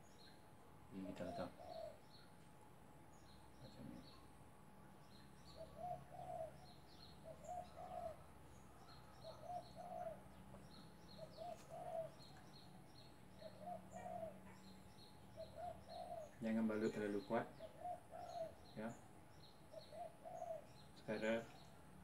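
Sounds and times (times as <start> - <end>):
dove cooing: 1.0 - 2.2, 5.5 - 14.8, 15.4 - 19.0, 19.7 - 21.4
small bird chirping: 3.1 - 21.8.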